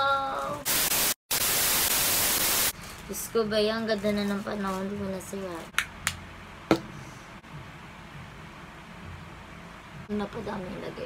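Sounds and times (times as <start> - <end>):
tv static hiss: 0.4 - 2.8.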